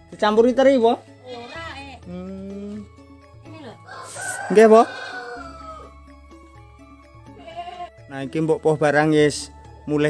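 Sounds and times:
rooster crowing: 0:03.8 - 0:06.0.

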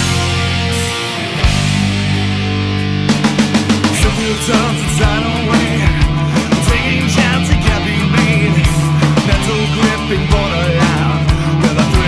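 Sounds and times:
sustained guitar chord: 0:00.0 - 0:06.4
bass guitar: 0:00.0 - 0:12.0
drum hit: 0:03.1 - 0:09.6.

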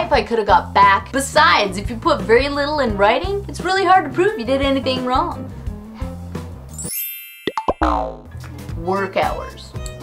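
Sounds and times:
background music: 0:00.0 - 0:07.2, 0:07.8 - 0:10.0
cartoon plops falling pitch: 0:07.4 - 0:08.3.

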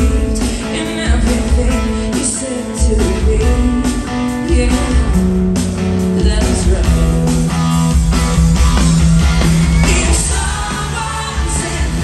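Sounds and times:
woman singing lead vocal: 0:00.0 - 0:05.4, 0:06.0 - 0:07.2, 0:09.8 - 0:12.0
pop-rock band playing loudly: 0:00.0 - 0:12.0
backing singers: 0:09.5 - 0:12.0.

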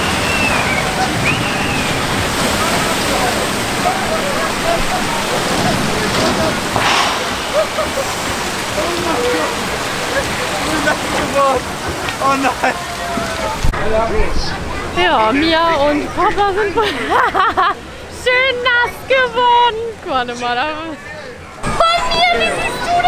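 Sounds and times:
faint voices: 0:00.0 - 0:16.7
water rushing and splashing: 0:00.0 - 0:20.6.

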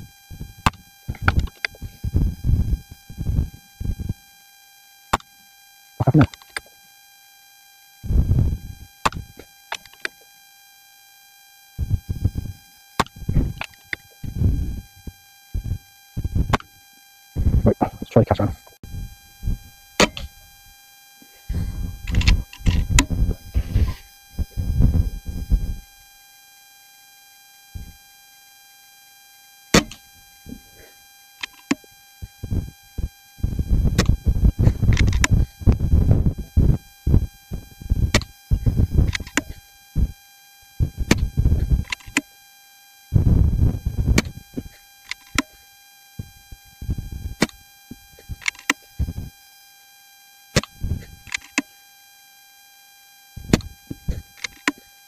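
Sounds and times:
faint microphone whine: 0:00.0 - 0:55.0
sharp click: 0:29.8 - 0:30.0.

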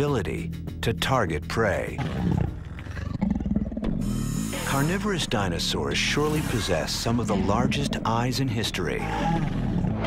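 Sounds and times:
dinosaur growl: 0:02.0 - 0:04.0, 0:08.8 - 0:10.0.

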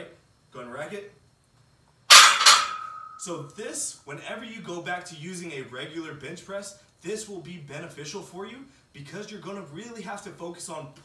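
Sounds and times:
barbell clanking on metal hooks: 0:02.1 - 0:03.3
lingering metallic ring: 0:02.1 - 0:03.4.

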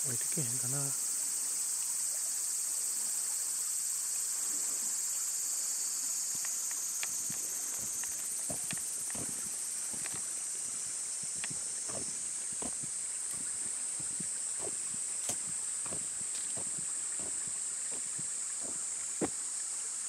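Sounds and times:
cicadas droning: 0:00.0 - 0:20.0
light footsteps: 0:06.4 - 0:19.4.

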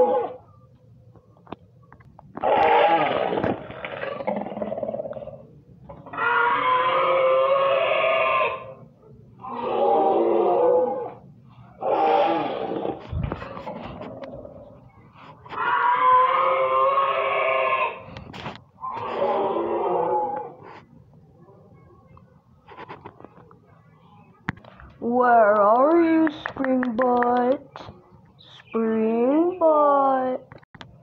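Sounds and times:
person making monster roars: 0:02.4 - 0:05.2, 0:09.4 - 0:11.2, 0:11.8 - 0:13.0, 0:18.8 - 0:20.6.

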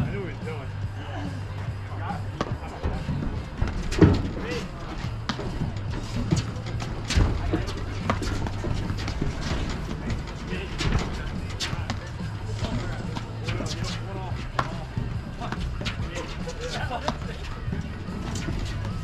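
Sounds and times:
faint voices: 0:00.0 - 0:19.0.

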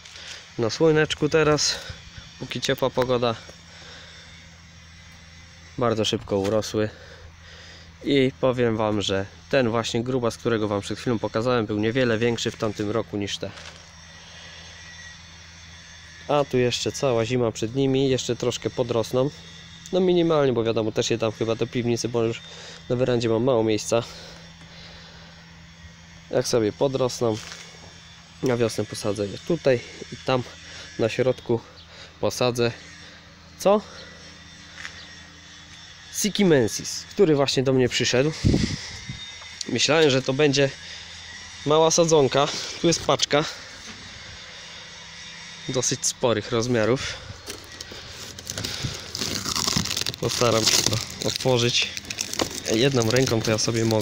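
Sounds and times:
faint outdoor low hum: 0:00.0 - 0:54.0
cardboard box crinkling: 0:47.4 - 0:54.0.

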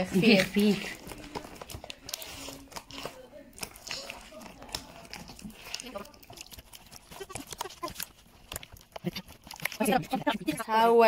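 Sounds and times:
faint voices: 0:00.0 - 0:08.0
hand slapping wet batter: 0:00.0 - 0:10.8.

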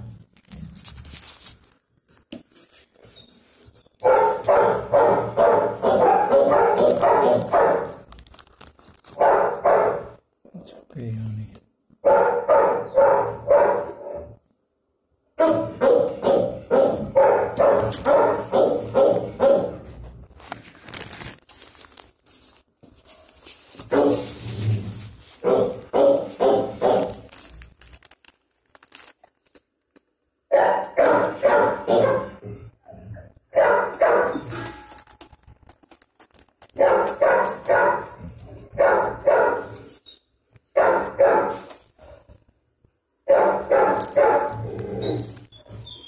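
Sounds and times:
dog barking: 0:04.0 - 0:08.0, 0:09.2 - 0:10.2, 0:12.0 - 0:14.4, 0:15.4 - 0:19.9, 0:23.8 - 0:24.4, 0:25.4 - 0:27.3, 0:30.5 - 0:32.5, 0:33.5 - 0:34.7, 0:36.8 - 0:39.9, 0:40.7 - 0:42.3, 0:43.2 - 0:44.7.

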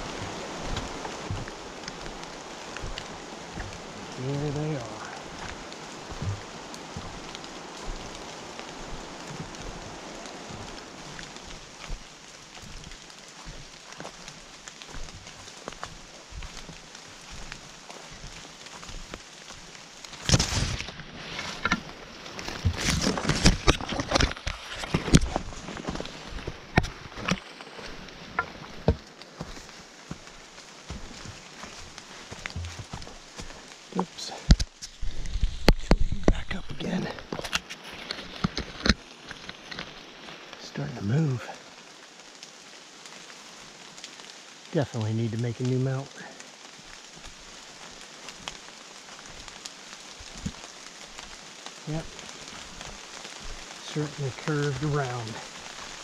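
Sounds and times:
branches rustling against camera: 0:00.0 - 0:56.0
footsteps through wet leaves: 0:00.0 - 0:56.0.

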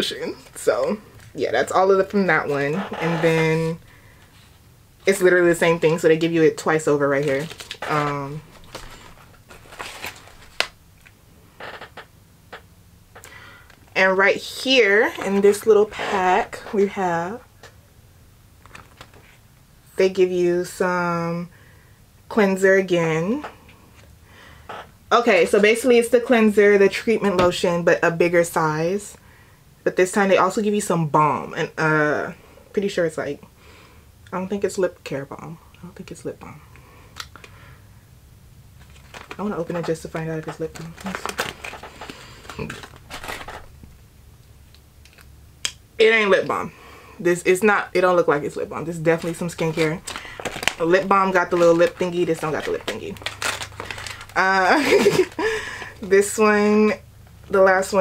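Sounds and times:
low room hum: 0:00.0 - 0:58.0
plastic pouch crinkling: 0:06.9 - 0:11.8, 0:18.6 - 0:19.4, 0:38.8 - 0:44.0, 0:48.4 - 0:56.1
package handling clicks: 0:38.8 - 0:39.4, 0:49.7 - 0:50.8.

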